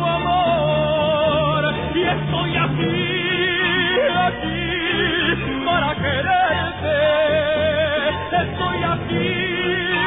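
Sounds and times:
man singing with vibrato: 0.0s - 10.0s
orchestral strings: 0.0s - 10.0s.

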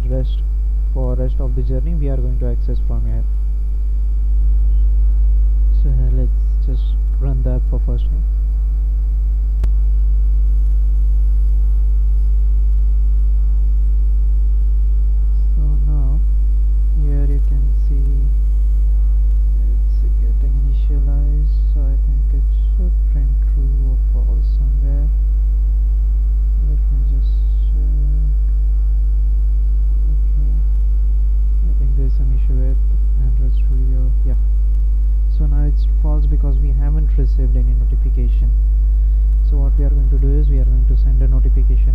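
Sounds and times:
short wordless voice sound: 0.0s - 3.3s, 5.7s - 8.3s, 15.3s - 16.3s, 16.9s - 18.4s, 19.0s - 25.2s, 26.6s - 28.5s, 31.6s - 34.4s, 35.3s - 38.6s, 39.4s - 41.9s
electrical mains hum: 0.0s - 41.9s.

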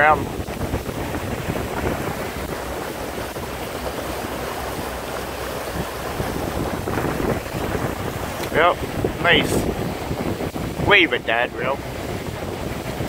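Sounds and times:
water rushing along boat hull: 0.0s - 13.0s
wind on microphone: 0.0s - 13.0s.

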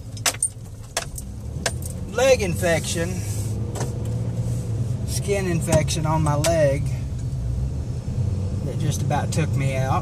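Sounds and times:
car cabin drone: 0.0s - 10.0s.

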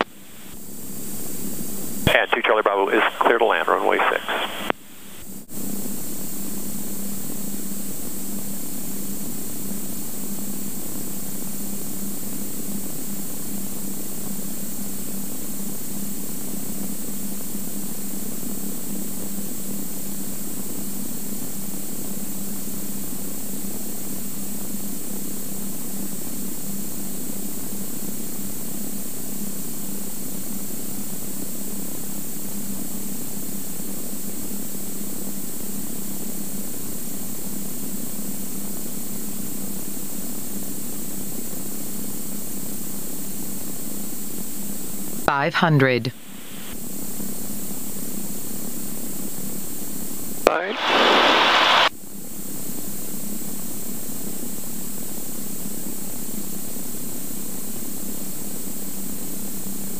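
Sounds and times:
steady hiss: 2.1s - 5.2s, 50.5s - 51.9s.

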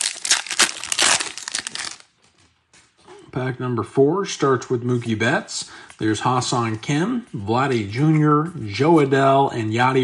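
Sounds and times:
foil wrapper tearing and crinkling: 0.0s - 2.1s.

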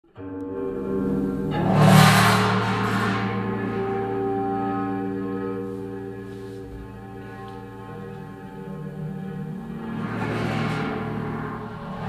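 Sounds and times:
steady held feedback tones: 0.2s - 12.0s.

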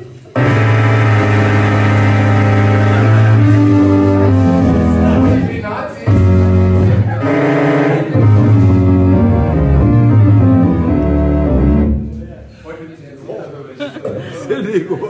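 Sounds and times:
jazz band playing: 0.0s - 12.4s.

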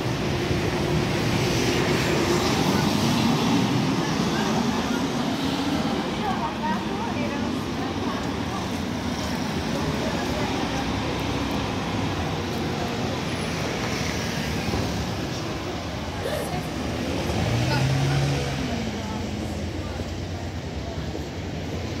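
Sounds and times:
bus going by: 0.0s - 22.0s
hum of cars: 0.0s - 22.0s
passers-by talking: 0.0s - 22.0s.

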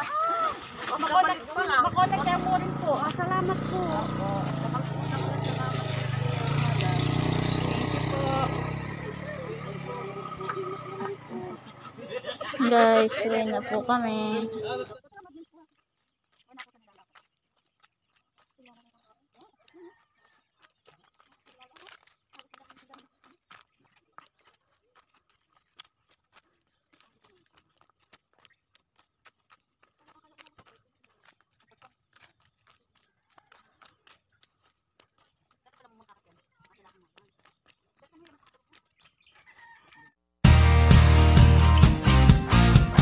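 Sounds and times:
sandal footsteps on dirt path: 0.0s - 43.0s
rooster crowing: 39.5s - 40.2s
loud music: 40.4s - 43.0s.

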